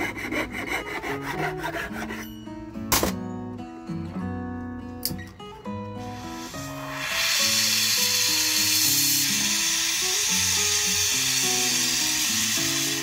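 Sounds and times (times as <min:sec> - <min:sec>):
soft guitar music: 0:00.0 - 0:13.0
gas torch hissing: 0:05.9 - 0:13.0.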